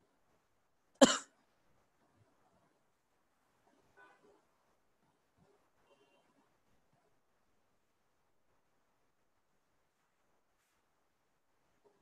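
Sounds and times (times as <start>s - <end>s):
man coughing: 1.0s - 1.3s.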